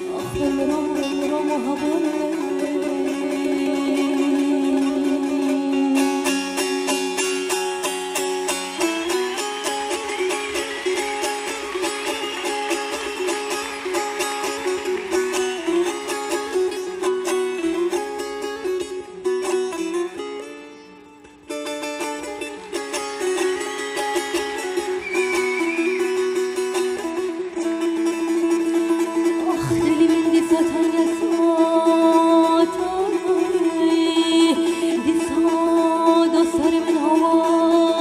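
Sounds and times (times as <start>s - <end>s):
long-necked lute plucked melody: 0.0s - 38.0s.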